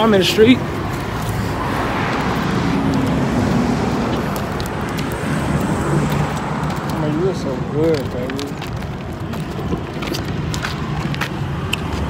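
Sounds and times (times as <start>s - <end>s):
cars passing: 0.0s - 12.0s.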